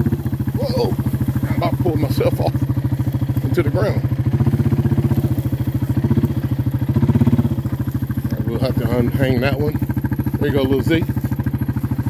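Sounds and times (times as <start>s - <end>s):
atv engine running: 0.0s - 12.0s.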